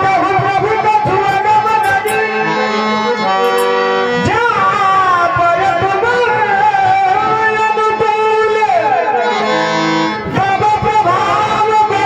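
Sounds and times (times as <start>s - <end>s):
harmonium playing chords: 0.0s - 12.0s.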